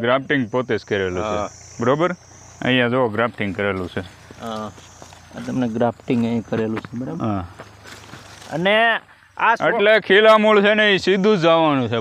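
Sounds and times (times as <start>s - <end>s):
man talking: 0.0s - 7.6s, 8.4s - 12.0s
crickets chirring: 0.0s - 12.0s.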